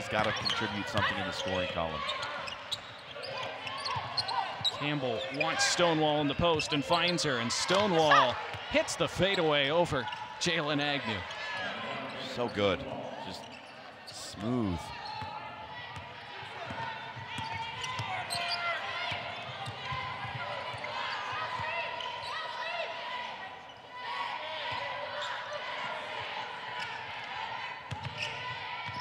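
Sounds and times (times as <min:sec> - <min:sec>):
players and spectators voices: 0:00.0 - 0:29.0.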